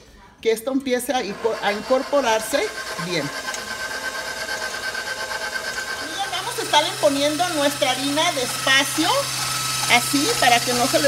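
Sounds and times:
stand mixer motor whine: 1.2s - 11.0s
whisk beating batter: 1.2s - 11.0s.

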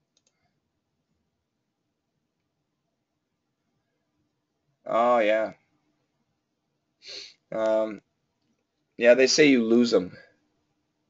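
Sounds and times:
faint keyboard clicks: 0.0s - 0.6s, 7.5s - 8.9s.

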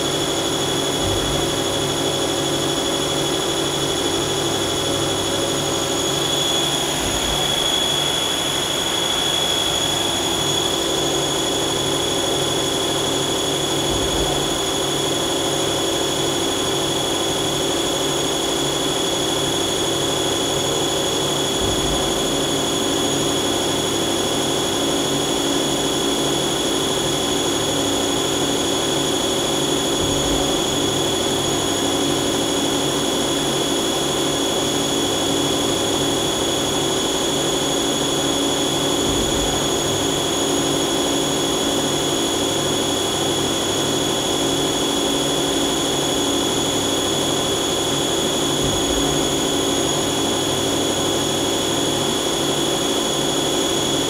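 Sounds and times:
lathe hum with high whine: 0.0s - 54.0s.

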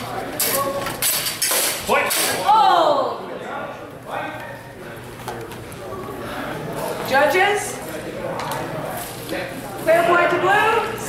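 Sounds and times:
faint talk in reverberant hall: 0.0s - 11.0s.

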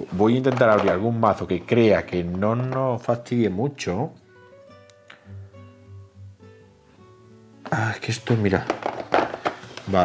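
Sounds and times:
acoustic guitar music: 0.0s - 10.0s.

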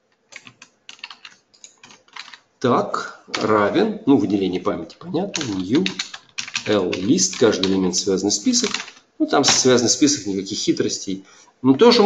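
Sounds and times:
computer keyboard typing: 0.3s - 2.4s, 5.3s - 9.6s.

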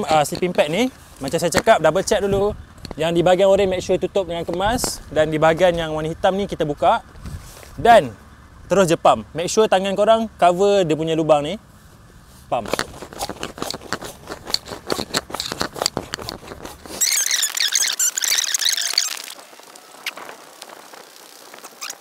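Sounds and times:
hand pump rustling strokes: 0.0s - 3.1s, 11.8s - 22.0s
high squealing chirping: 16.9s - 22.0s.

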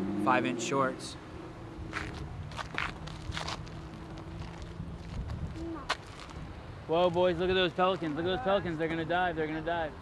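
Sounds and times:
footsteps scuffing on ground: 1.9s - 6.4s.

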